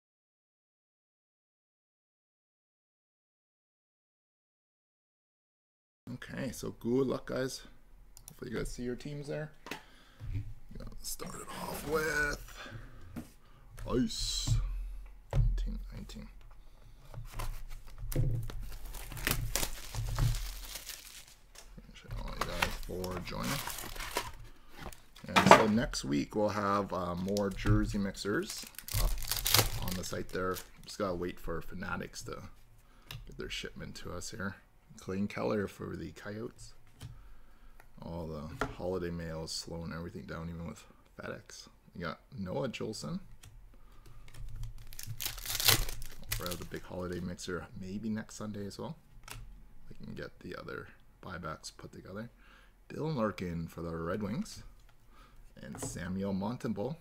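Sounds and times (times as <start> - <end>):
low steady hum: 6.1 - 57.0
shrink wrap crinkling and ripping: 17.4 - 25.1, 28.3 - 30.9, 44.3 - 47.2.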